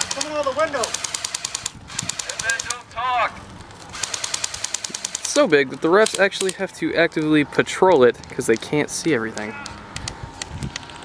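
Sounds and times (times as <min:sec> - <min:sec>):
airsoft guns firing full auto: 0:00.0 - 0:02.8, 0:03.9 - 0:06.5
person calling out: 0:02.2 - 0:03.4, 0:09.3 - 0:09.8.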